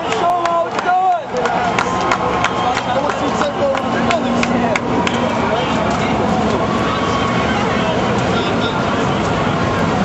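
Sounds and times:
large crowd din of voices: 0:00.0 - 0:10.0.

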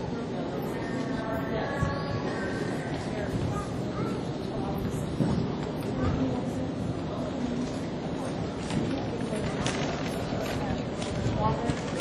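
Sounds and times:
distant voices: 0:00.0 - 0:12.0
indoor arena noise: 0:00.0 - 0:12.0.

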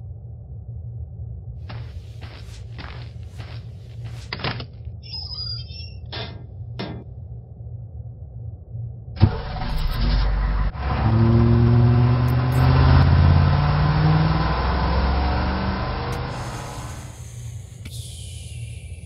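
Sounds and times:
bus engine revving: 0:09.2 - 0:17.6.

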